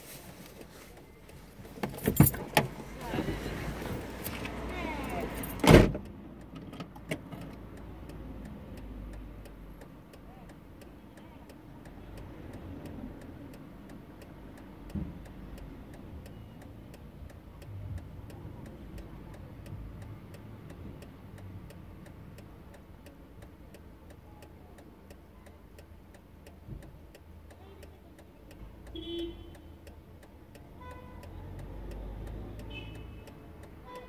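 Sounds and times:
handling sounds: 0.0s - 3.0s
car engine: 0.0s - 28.9s
street traffic rumble: 0.0s - 34.0s
person speaking: 2.1s - 5.6s
faint even ticking: 7.6s - 34.0s.

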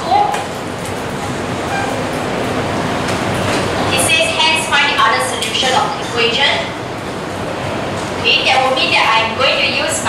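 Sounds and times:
classroom background hiss: 0.0s - 10.0s
marker squeaking on whiteboard: 1.6s - 2.2s.

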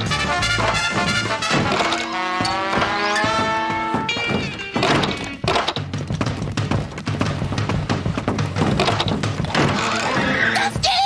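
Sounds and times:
cartoon chase music: 0.0s - 5.4s
loud thunks: 0.5s - 10.3s.

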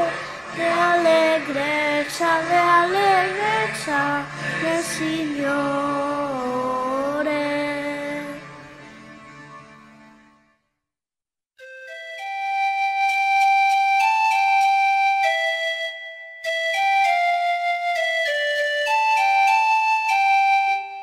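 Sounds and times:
flute melody: 11.6s - 21.0s.

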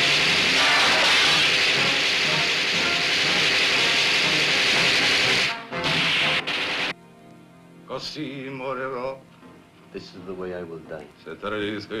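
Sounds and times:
loud hissing rush: 0.0s - 6.9s
faint music: 6.9s - 12.0s.

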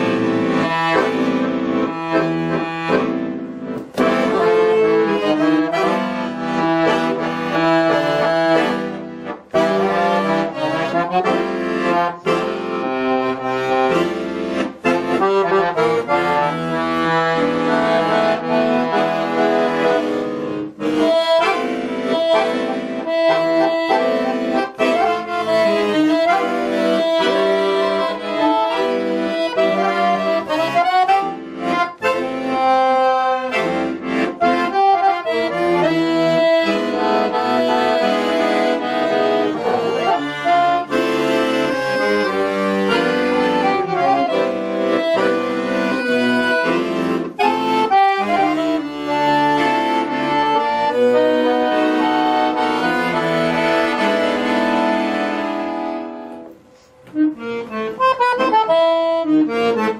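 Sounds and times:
piano accordion melody: 0.0s - 59.9s.

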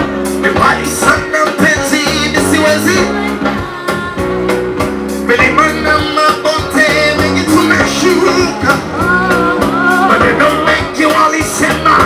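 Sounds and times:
deep bass notes: 0.0s - 12.0s
drum kit and hand drums: 0.0s - 12.0s
lead singer singing: 0.4s - 12.0s.

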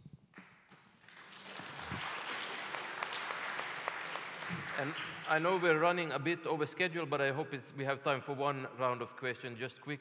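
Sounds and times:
audience applauding: 1.0s - 6.0s.

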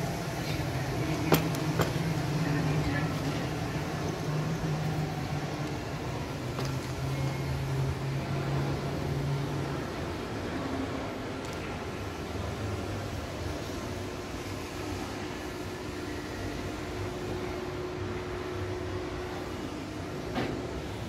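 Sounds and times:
faint voices: 0.0s - 20.7s
low hum of large hall: 0.0s - 21.0s.

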